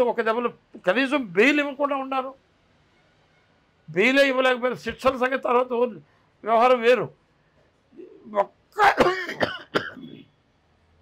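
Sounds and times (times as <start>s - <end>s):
man clearing his throat: 8.0s - 10.3s.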